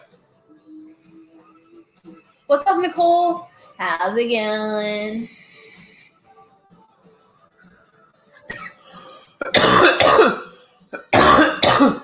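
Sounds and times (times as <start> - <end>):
man coughing harshly: 9.4 - 12.0.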